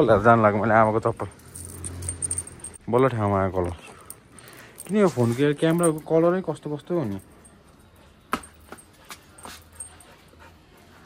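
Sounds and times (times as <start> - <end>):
steel chain jingling: 0.0 - 10.5.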